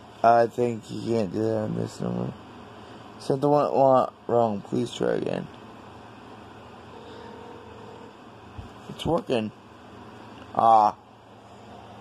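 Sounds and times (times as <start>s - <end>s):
room hiss and hum: 0.0s - 12.0s
faint steady tone: 1.6s - 8.5s.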